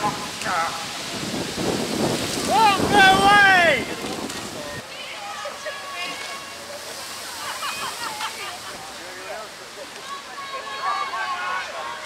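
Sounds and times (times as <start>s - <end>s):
river water flowing: 0.0s - 12.0s.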